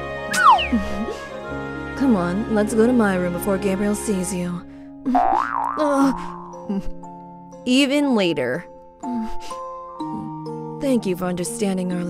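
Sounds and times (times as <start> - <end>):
soft background music: 0.0 - 12.0
wobbling cartoon sound effect: 0.3 - 0.8.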